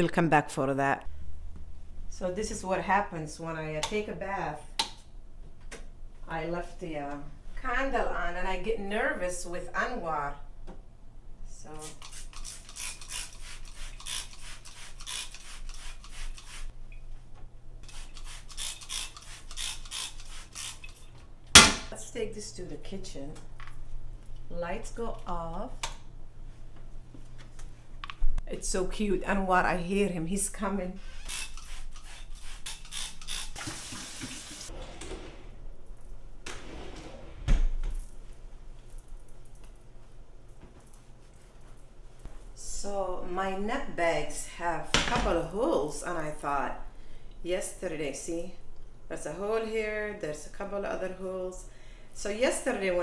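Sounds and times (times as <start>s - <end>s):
spray bottle squirting: 11.8s - 16.7s, 17.8s - 21.1s, 31.2s - 34.7s
water running from a tap: 33.3s - 34.7s.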